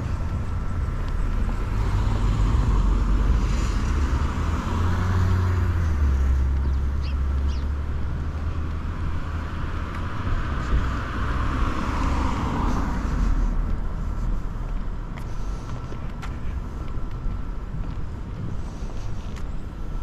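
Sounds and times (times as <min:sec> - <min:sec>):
car passing: 0:00.0 - 0:20.0
low rumble of street noise: 0:00.0 - 0:20.0.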